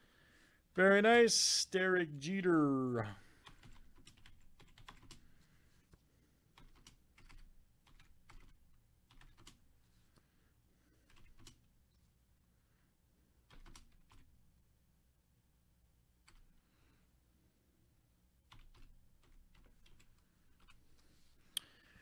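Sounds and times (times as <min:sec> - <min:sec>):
keyboard typing clicks: 0:03.4 - 0:05.2, 0:06.6 - 0:09.6.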